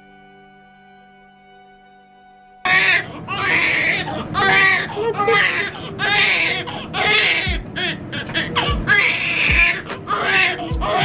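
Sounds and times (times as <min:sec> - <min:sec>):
newborn baby crying: 0:02.7 - 0:11.0.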